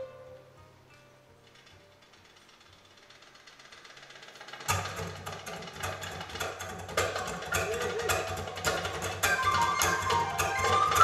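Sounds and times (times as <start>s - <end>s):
live folk band playing: 0.0s - 0.6s, 9.0s - 11.0s
recorder melody: 0.0s - 0.6s, 9.2s - 11.0s
goblet drum strikes: 5.8s - 11.0s.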